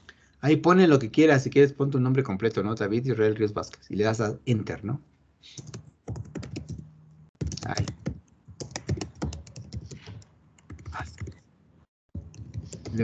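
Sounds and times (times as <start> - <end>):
typing on computer keyboard: 5.6 - 11.4, 12.2 - 13.0.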